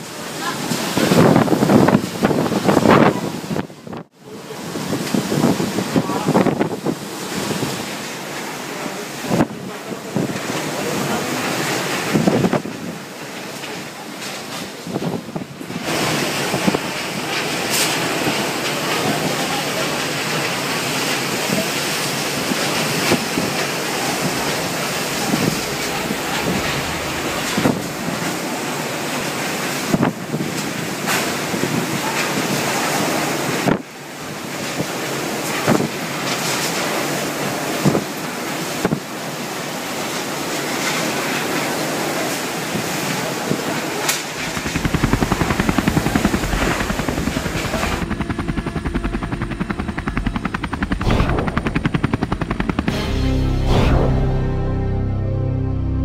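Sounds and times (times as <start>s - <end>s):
loud wind buffeting microphone: 0.8s - 4.1s, 22.4s - 28.9s, 44.3s - 54.2s
knocks and bangs: 44.4s - 54.3s.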